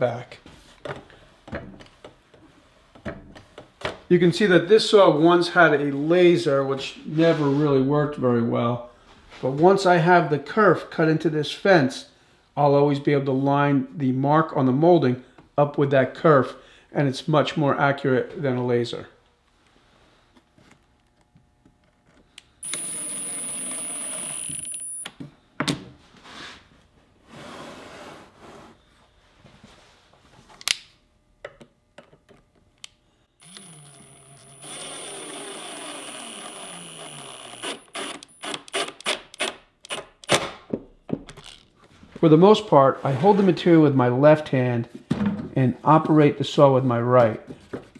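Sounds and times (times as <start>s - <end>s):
impact driver driving screws: 33.4s - 40.5s.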